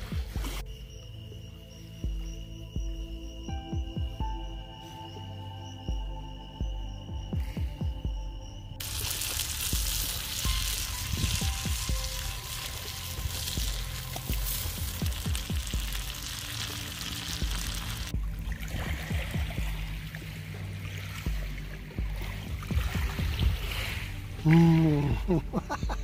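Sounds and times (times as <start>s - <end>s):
background music: 0.0s - 26.0s
potatoes sizzling in a frying pan: 8.8s - 18.1s.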